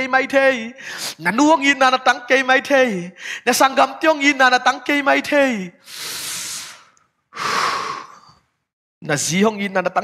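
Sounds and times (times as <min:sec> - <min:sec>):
man speaking emotionally: 0:00.0 - 0:05.8, 0:09.0 - 0:10.0
man's sharp breath: 0:00.8 - 0:01.2, 0:05.8 - 0:08.5.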